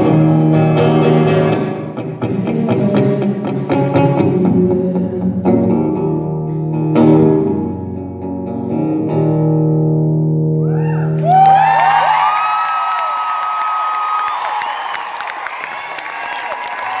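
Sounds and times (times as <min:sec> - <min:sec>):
audience applause and cheering: 0:10.6 - 0:17.0.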